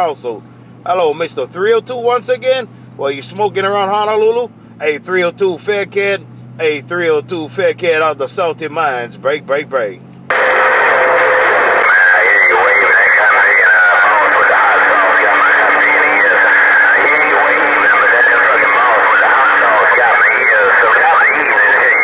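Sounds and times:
radio static: 10.3s - 22.0s
weak radio voice: 10.3s - 22.0s.

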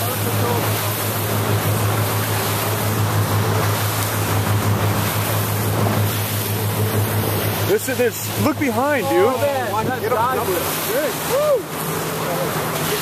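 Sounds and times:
boat engine hum: 0.0s - 13.0s
water washing along hull: 0.0s - 13.0s.

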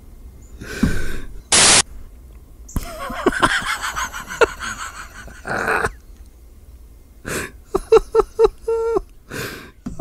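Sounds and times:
man laughing: 2.8s - 6.0s, 7.3s - 9.1s
man gasping for breath: 9.3s - 9.8s.

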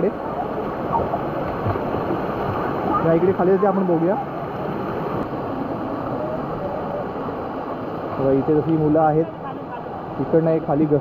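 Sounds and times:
stream rushing over rocks: 0.0s - 11.0s.

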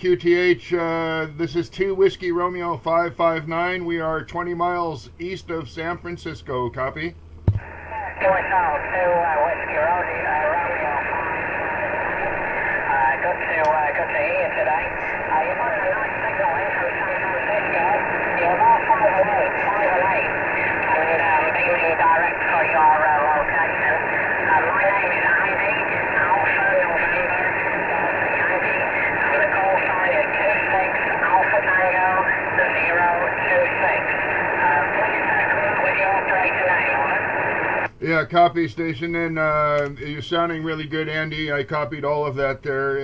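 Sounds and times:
man's voice over radio speaker: 0.0s - 7.2s, 8.2s - 43.0s
radio static and hiss: 0.0s - 43.0s.

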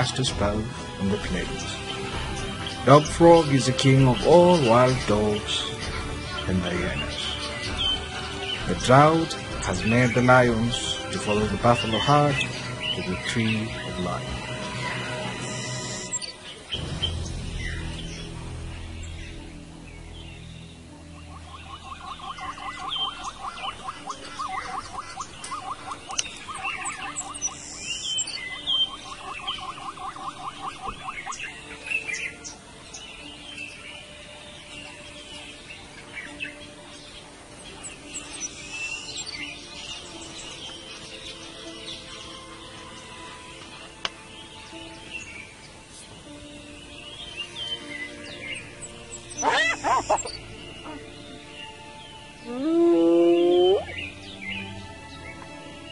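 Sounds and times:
loud sweeping bird call: 0.0s - 43.6s, 46.6s - 55.9s
background music: 0.0s - 55.9s
birds calling and chirping: 0.0s - 55.9s
rapid trilling bird call: 21.0s - 32.6s, 47.4s - 54.8s.

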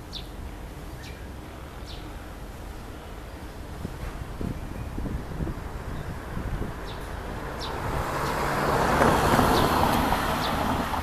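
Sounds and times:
car driving past: 7.6s - 11.0s.

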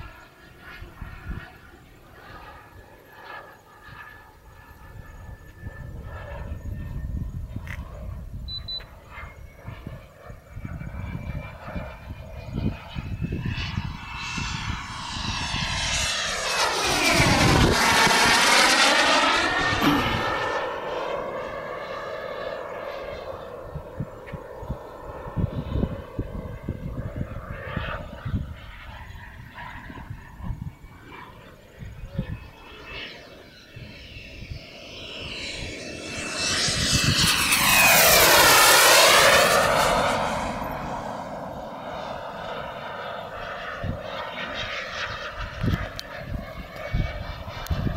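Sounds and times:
jet passing low: 0.0s - 47.9s.

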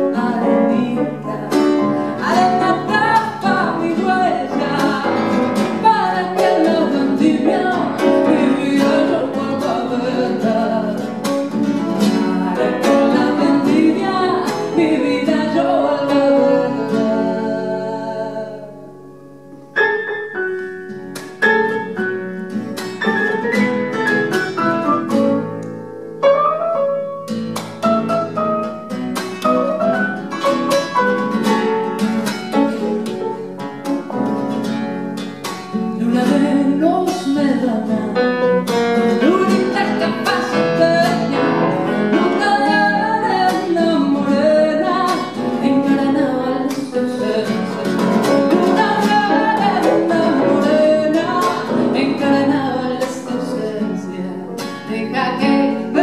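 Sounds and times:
woman singing: 0.0s - 18.9s, 35.7s - 56.0s
classical guitar: 0.0s - 56.0s
grand piano: 0.0s - 56.0s.

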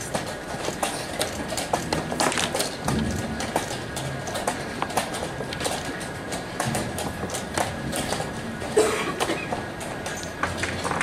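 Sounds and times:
crowd hubbub: 0.0s - 11.0s.

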